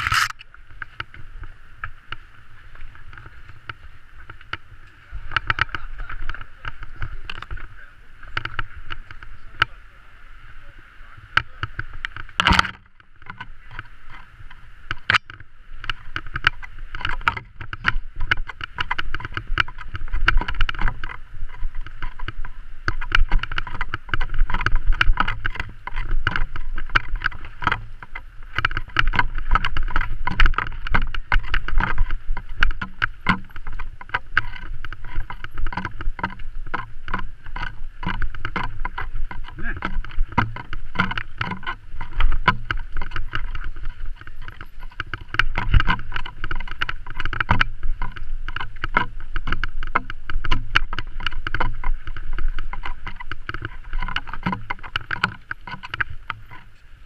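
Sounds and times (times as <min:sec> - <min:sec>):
bike clattering over bumps: 0:00.0 - 0:09.8, 0:11.3 - 0:56.8
wind and tyres rumbling: 0:00.0 - 0:57.0.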